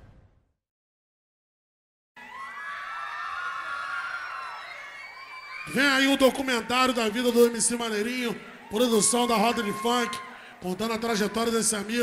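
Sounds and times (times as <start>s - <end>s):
crowd cheering and shouting: 2.2s - 12.0s.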